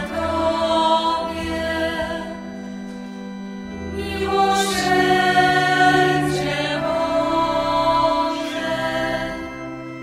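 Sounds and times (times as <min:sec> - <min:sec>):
choir singing a slow hymn: 0:00.0 - 0:03.0, 0:03.7 - 0:10.0.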